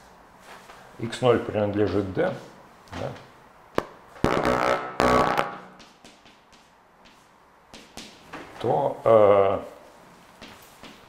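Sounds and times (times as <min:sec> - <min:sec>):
chalk tapping on blackboard: 0:05.7 - 0:08.2.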